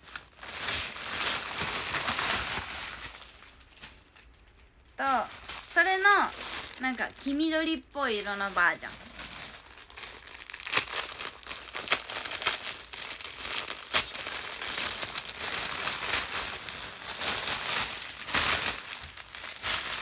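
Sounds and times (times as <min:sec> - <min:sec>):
plastic bag crinkling: 0:00.0 - 0:20.0.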